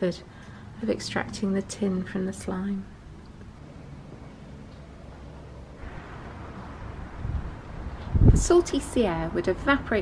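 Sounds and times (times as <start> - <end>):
wind buffeting microphone: 5.8 - 10.0.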